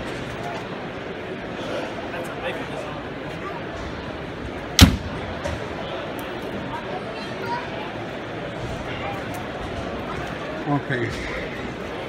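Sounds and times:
crowd murmur: 0:00.0 - 0:12.0
sharp bang: 0:04.8 - 0:05.4.

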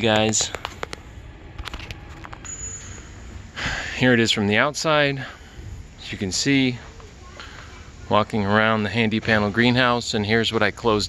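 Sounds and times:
faint outdoor background noise: 0:00.0 - 0:11.0.

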